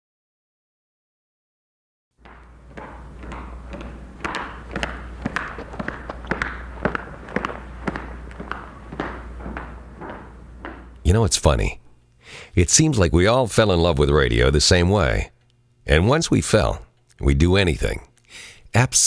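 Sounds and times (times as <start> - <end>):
low steady hum: 2.2 - 19.0.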